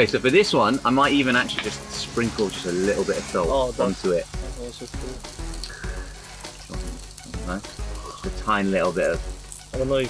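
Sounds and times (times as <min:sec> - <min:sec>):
beef sizzling on a grill: 0:00.0 - 0:10.0.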